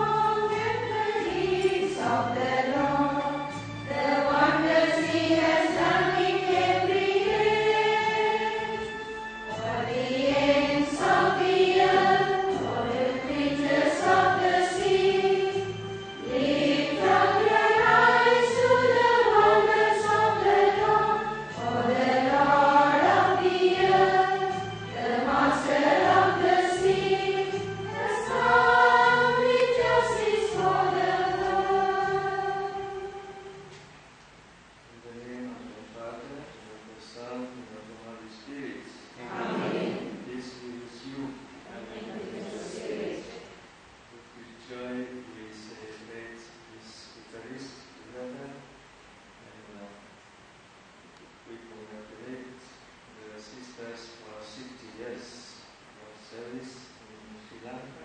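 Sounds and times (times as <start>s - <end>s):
choir singing a hymn: 0.0s - 33.7s, 38.5s - 43.6s.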